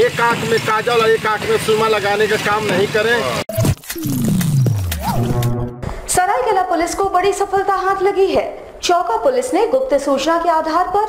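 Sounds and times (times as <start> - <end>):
deep pitch-sliding sound effect: 3.9 - 6.1
music: 4.9 - 6.0.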